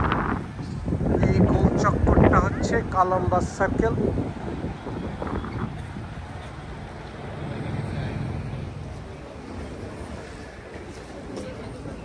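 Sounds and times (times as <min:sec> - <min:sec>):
cars passing on road: 0:00.0 - 0:12.0
city traffic rumble: 0:00.0 - 0:12.0.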